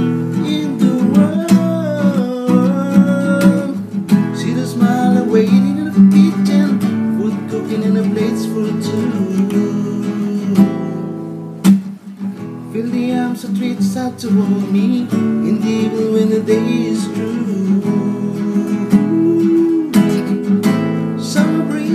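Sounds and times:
classical guitar strumming chords: 0.0s - 21.9s.

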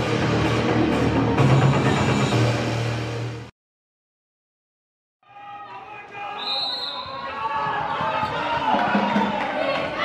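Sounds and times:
voices calling across hall: 5.3s - 10.0s.

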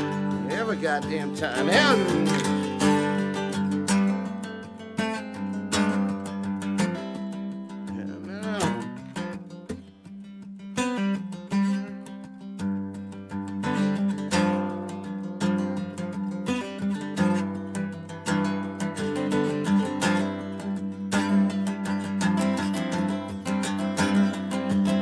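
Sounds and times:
acoustic guitar strumming: 0.0s - 25.0s.

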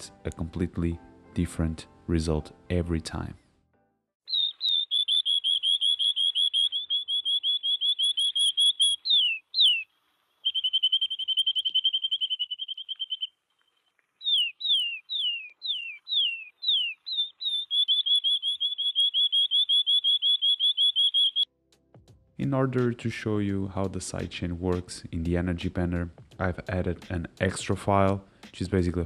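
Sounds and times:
falling swooping whistles: 4.3s - 9.8s, 10.4s - 13.3s, 14.3s - 21.5s
canary trilling: 4.3s - 13.3s, 14.2s - 21.5s.

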